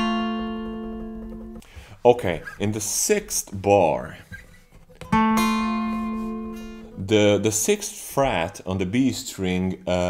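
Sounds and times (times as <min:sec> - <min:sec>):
acoustic guitar note ringing: 0:00.0 - 0:08.4.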